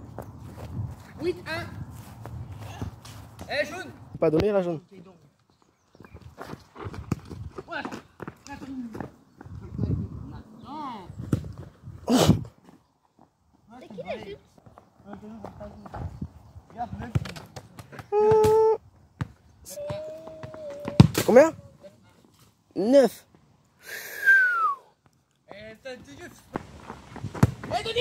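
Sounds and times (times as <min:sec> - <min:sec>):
scuffing footsteps on dirt: 0:00.0 - 0:03.8, 0:05.3 - 0:09.8, 0:12.5 - 0:16.8, 0:26.0 - 0:28.0
ball being kicked: 0:19.2 - 0:21.3, 0:27.2 - 0:28.0.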